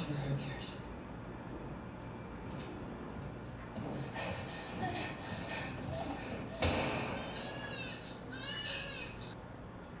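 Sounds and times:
newborn baby crying: 5.9 - 9.4.

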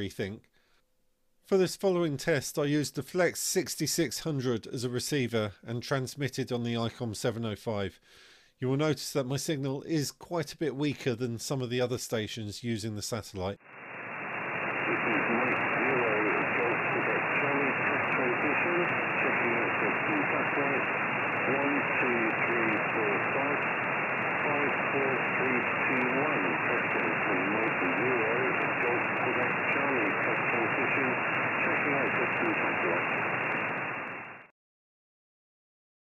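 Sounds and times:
radio static: 13.7 - 34.5
weak radio voice: 14.4 - 34.0.

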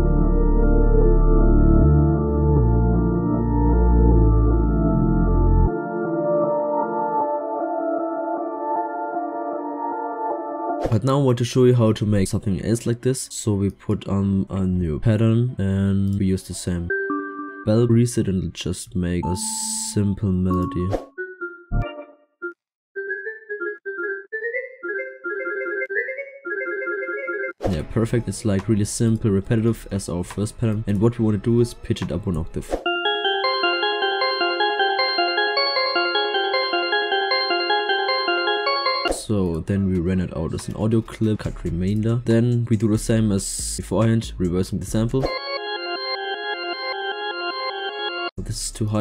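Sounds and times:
bell synth melody: 16.9 - 18.0, 19.2 - 22.2, 32.9 - 39.2, 45.3 - 48.4.

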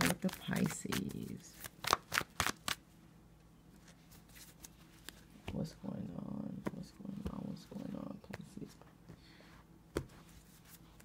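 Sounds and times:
cards being shuffled: 0.0 - 2.8, 3.8 - 5.6.

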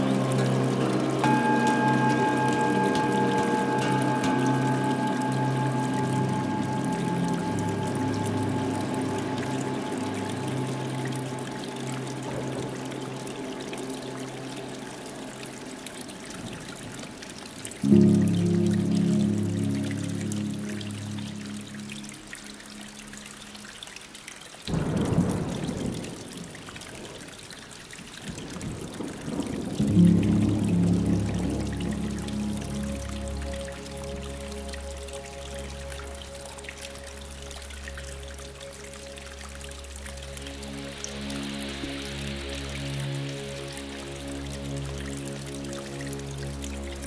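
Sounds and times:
ambient music with held chords: 0.0 - 26.2, 28.6 - 47.0
trickling water: 0.0 - 47.0.

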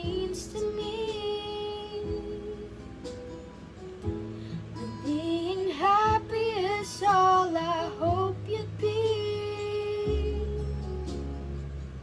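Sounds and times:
woman singing: 0.0 - 3.1, 4.8 - 11.2
backing track: 0.0 - 12.0.

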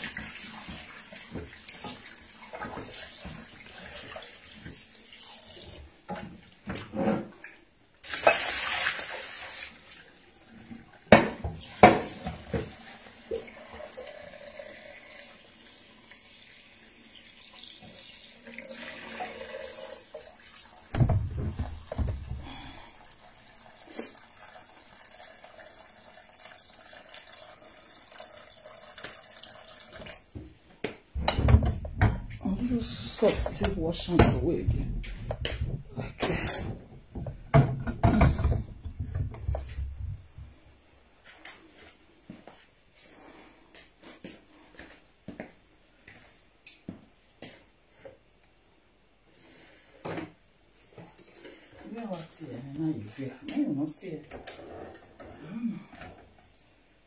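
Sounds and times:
water running in kitchen sink: 0.0 - 30.6, 31.2 - 40.6
clatter of bowls and utensils: 6.1 - 8.7.

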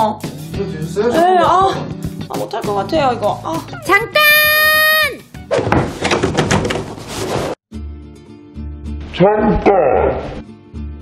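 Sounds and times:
woman's high shout: 4.0 - 5.2
sharp knocks and thuds: 5.5 - 7.0.

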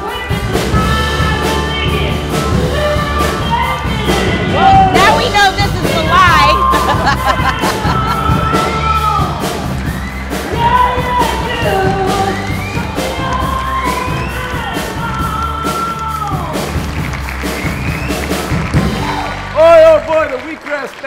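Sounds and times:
electric bass: 0.0 - 20.2
drums: 0.0 - 21.0.

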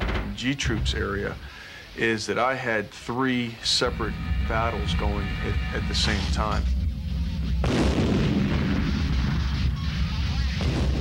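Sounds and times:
steady low rumble: 3.6 - 11.0
tank blast: 3.8 - 11.0.

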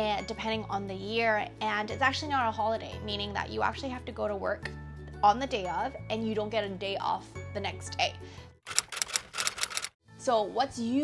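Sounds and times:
typewriter key clicks: 8.7 - 9.9.

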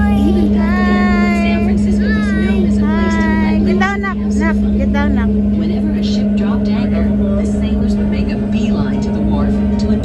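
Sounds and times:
children calling: 0.0 - 4.8
boat engine droning: 0.0 - 10.0.

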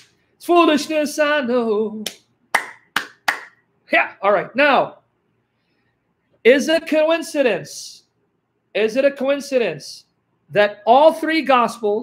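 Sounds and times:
man clapping hands: 2.0 - 3.6.

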